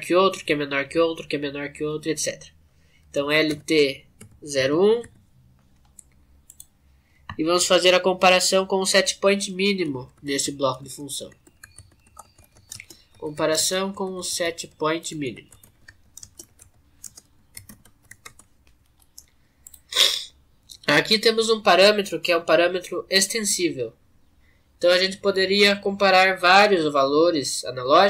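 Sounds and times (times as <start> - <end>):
faint keyboard typing: 3.0 - 7.5, 9.0 - 19.9
computer keys clicking: 3.4 - 6.8, 9.8 - 19.8.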